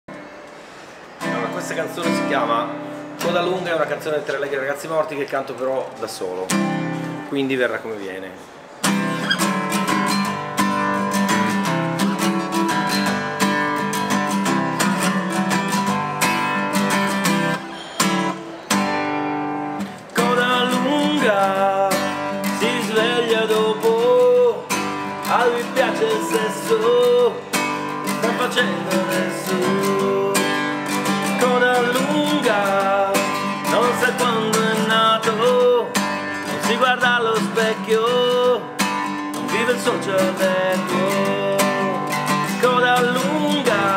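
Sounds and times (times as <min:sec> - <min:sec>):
acoustic guitar strummed: 0:00.1 - 0:05.3, 0:06.4 - 0:07.4, 0:08.4 - 0:43.9
man singing: 0:20.1 - 0:43.9.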